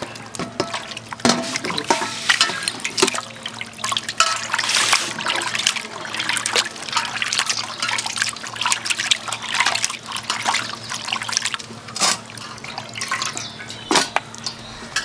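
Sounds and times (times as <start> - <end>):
wet paste scraping and squelching: 4.4 - 14.9.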